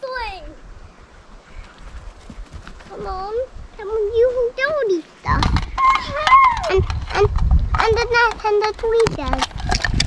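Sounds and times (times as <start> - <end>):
low rumble on microphone: 5.2 - 8.3
child calling out: 5.8 - 7.3.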